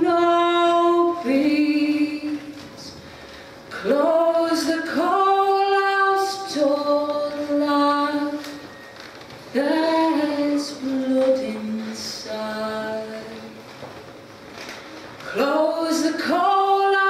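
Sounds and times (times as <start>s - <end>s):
woman singing unaccompanied: 0.0s - 3.0s, 3.7s - 8.7s, 9.5s - 13.6s, 15.3s - 17.0s.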